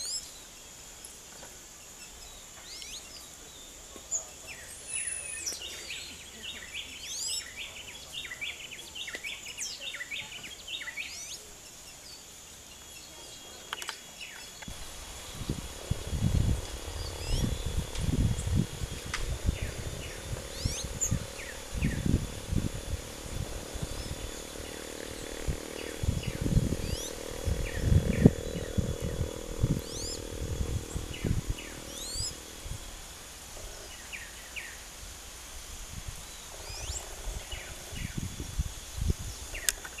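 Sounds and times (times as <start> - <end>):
small birds chirping: 0.0 - 35.2, 35.8 - 40.0.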